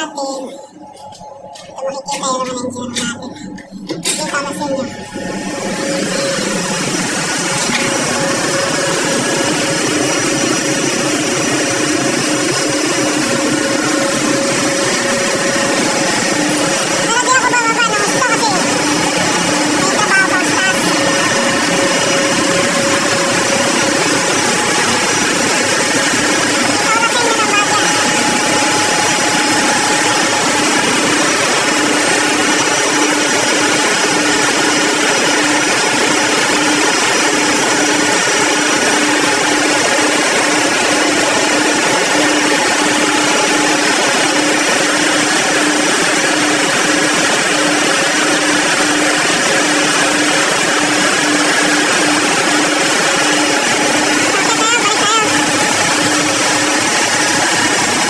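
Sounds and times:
engine room machinery roaring: 0:00.0 - 0:58.0.

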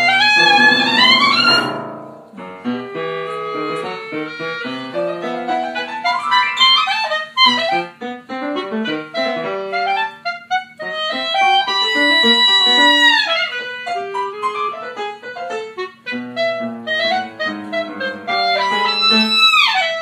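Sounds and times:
clarinet runs: 0:00.0 - 0:01.8, 0:02.8 - 0:20.0
piano chords: 0:00.0 - 0:19.5.

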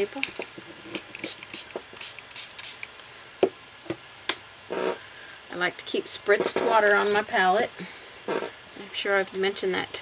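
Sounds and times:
spray bottle spritzing: 0:00.9 - 0:02.9.

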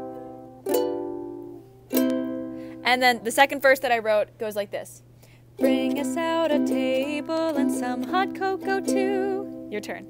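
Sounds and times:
ukulele strumming chords: 0:00.0 - 0:03.4, 0:05.6 - 0:10.0.

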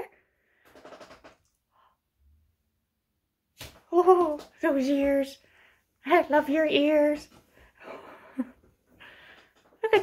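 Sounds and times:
woman speaking: 0:03.9 - 0:05.4, 0:06.0 - 0:07.3.

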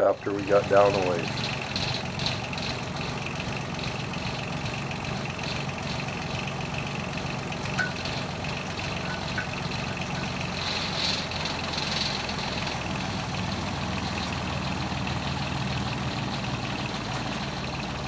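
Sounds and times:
drilling rig engine running: 0:00.0 - 0:18.0.

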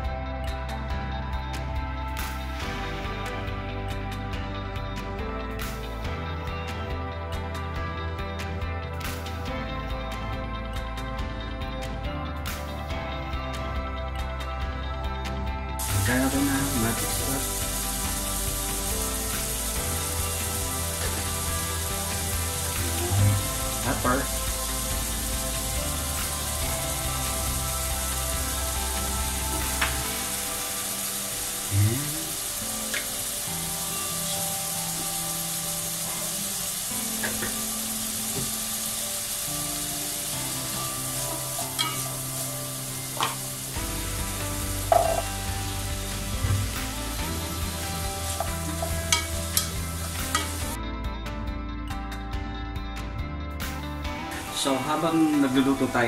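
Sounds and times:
vegetables sizzling in a pan: 0:15.8 - 0:50.8.

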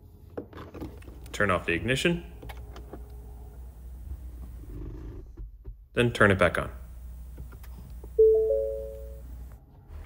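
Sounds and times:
low steady hum: 0:06.0 - 0:10.0
car dashboard chime: 0:08.2 - 0:09.2.

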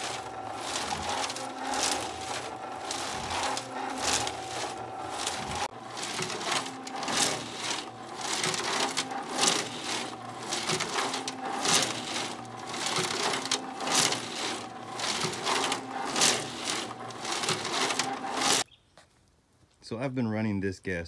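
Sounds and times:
drive motor hum: 0:00.0 - 0:18.6.

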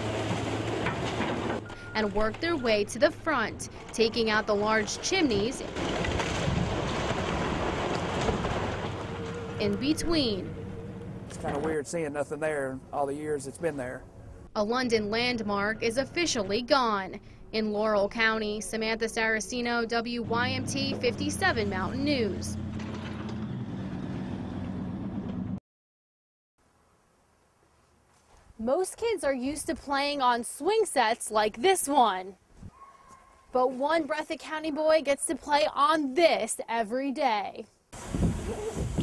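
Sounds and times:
brick and debris collapsing: 0:00.0 - 0:01.7, 0:04.9 - 0:09.6
diesel engine running: 0:00.0 - 0:13.4, 0:20.2 - 0:25.6.

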